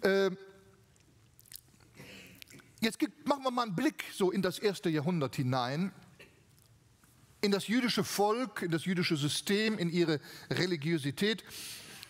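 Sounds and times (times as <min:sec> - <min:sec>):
man speaking: 0:00.0 - 0:00.7, 0:02.8 - 0:06.1, 0:07.4 - 0:11.5
short breath: 0:11.5 - 0:12.0.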